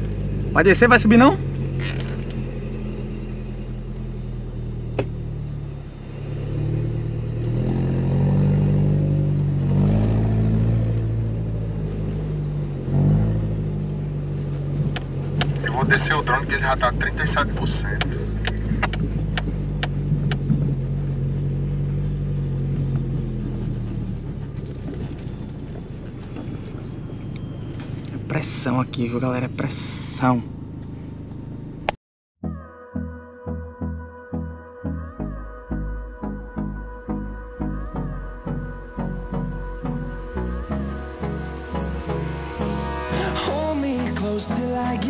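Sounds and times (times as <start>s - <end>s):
car engine revving: 0.0s - 32.0s, 35.2s - 45.0s.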